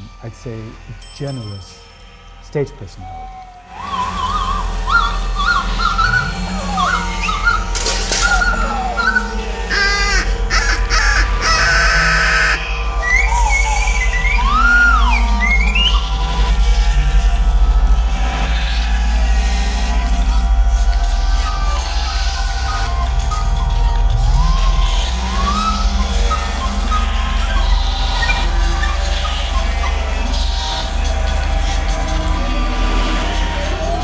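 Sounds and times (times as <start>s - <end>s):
steady low drone: 0.0s - 34.0s
solo recorder playing: 21.4s - 31.1s.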